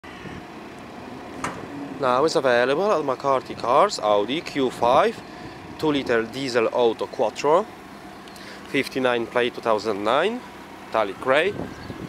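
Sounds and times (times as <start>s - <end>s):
steady outdoor hiss: 0.1s - 12.0s.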